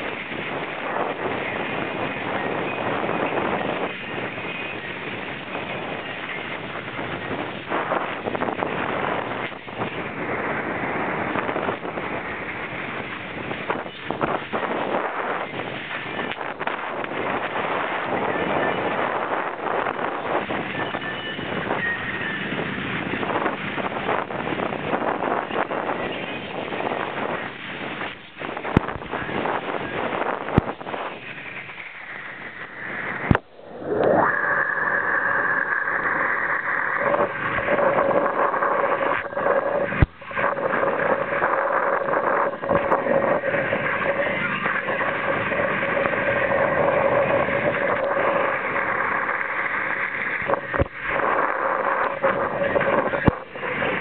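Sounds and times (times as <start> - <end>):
spraying water rushing: 0.0 - 54.0
steady whine: 0.0 - 54.0
wind buffeting microphone: 0.0 - 54.0.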